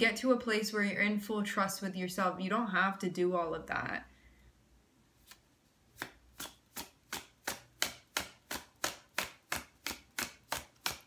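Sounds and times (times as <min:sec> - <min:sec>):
cards being shuffled: 0:05.2 - 0:11.0.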